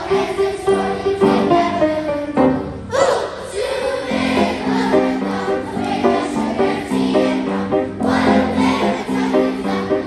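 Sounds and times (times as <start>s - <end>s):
children's choir singing: 0.0s - 10.0s
instrumental accompaniment: 4.0s - 10.0s.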